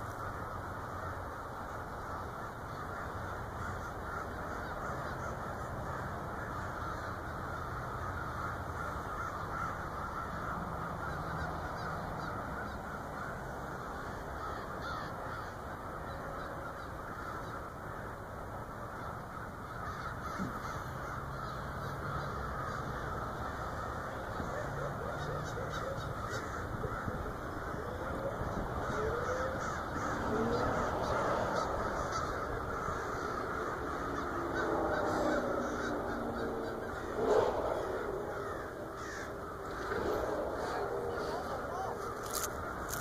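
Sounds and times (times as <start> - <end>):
crows cawing: 0.0 - 43.0.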